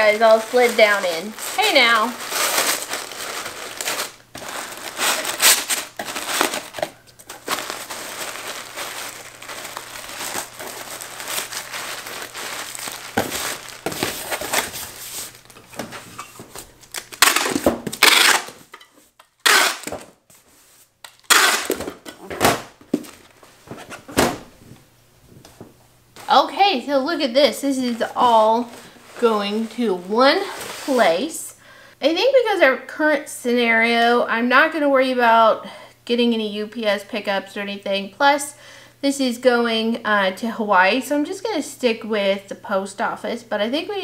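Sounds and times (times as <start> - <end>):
packing paper crinkling: 0.0 - 20.1
box flaps folding: 2.2 - 18.7
tape pulled from tape gun: 17.0 - 18.6, 19.4 - 20.1, 21.1 - 21.9.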